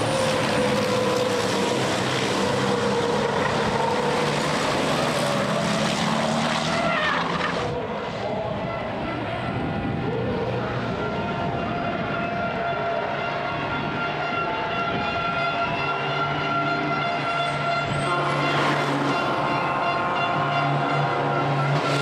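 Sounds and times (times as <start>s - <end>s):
racing truck engines revving: 0.0s - 22.0s.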